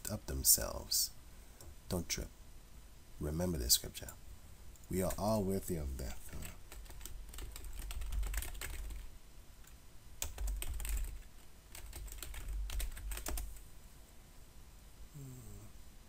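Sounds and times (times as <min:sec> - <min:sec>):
computer keyboard typing: 0:06.3 - 0:13.6.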